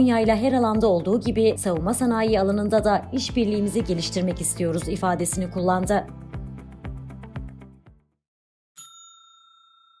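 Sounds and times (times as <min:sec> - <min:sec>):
background music: 0:00.0 - 0:08.2
bright bell-like ding: 0:08.8 - 0:10.0.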